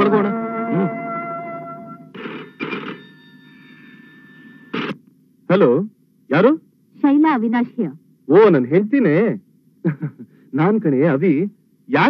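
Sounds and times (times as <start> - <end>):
landline telephone bell ringing: 2.2 - 4.8.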